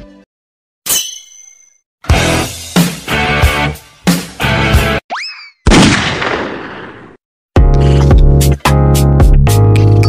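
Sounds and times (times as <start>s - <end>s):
intro music with heavy beat: 2.1s - 5.0s.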